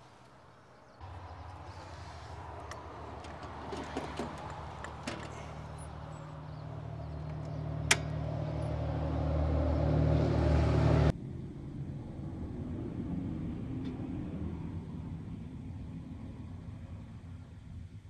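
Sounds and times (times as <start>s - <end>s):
low engine rumble: 0.0s - 18.0s.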